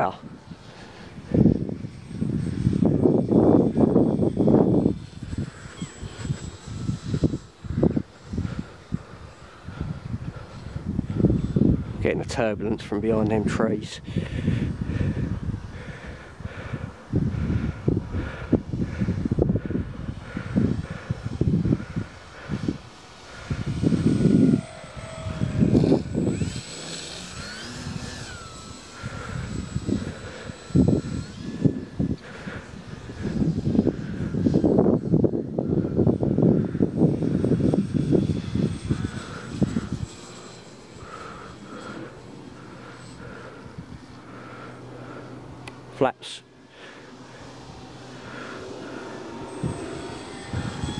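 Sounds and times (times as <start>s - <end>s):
wind buffeting microphone: 0.0s - 45.9s, 46.8s - 50.9s
model plane motor whining: 0.0s - 50.9s.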